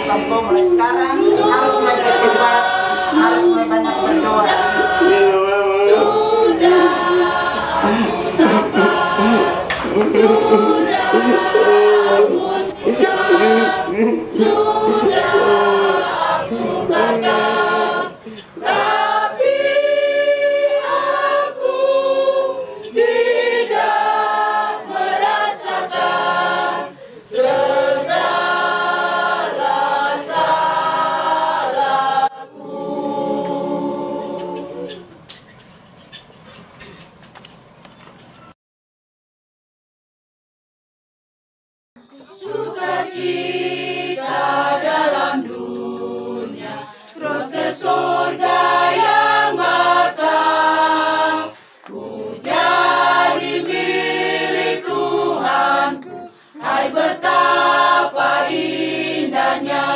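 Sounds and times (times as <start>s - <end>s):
church choir singing a hymn: 0.0s - 35.2s, 42.0s - 59.9s
faint background hiss: 0.0s - 38.5s.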